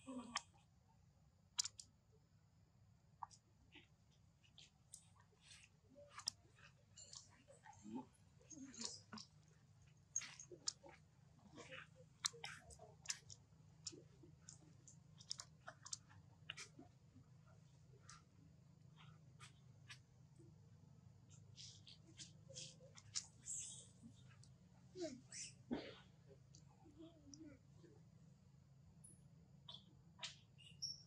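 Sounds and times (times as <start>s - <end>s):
monkey mouth click: 1.6s - 1.9s.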